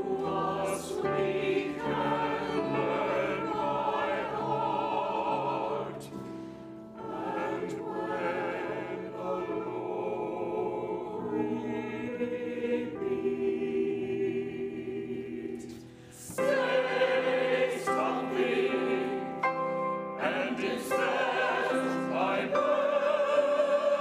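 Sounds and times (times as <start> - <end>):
mixed choir singing chords: 0.0 - 24.0.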